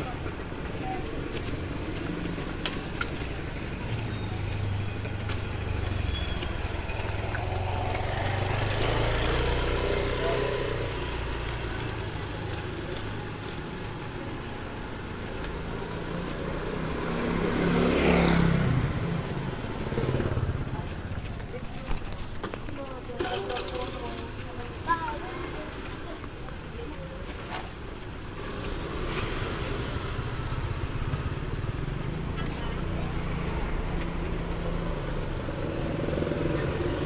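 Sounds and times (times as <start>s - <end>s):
people's voices: 0.0s - 18.8s, 19.6s - 35.3s
motorcycle engines running: 0.0s - 37.0s
motorcycle passing close: 4.0s - 13.2s, 15.6s - 21.4s, 28.4s - 37.0s.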